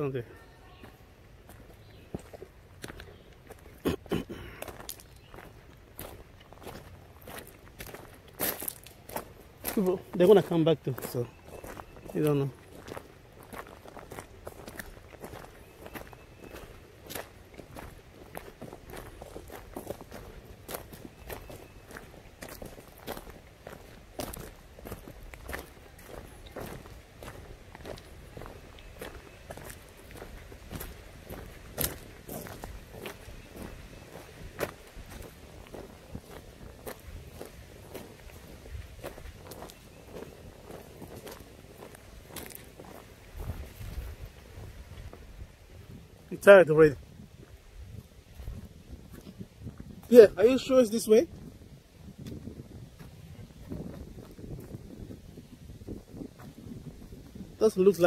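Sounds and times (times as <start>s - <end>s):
footsteps on gravel: 0.0s - 58.0s.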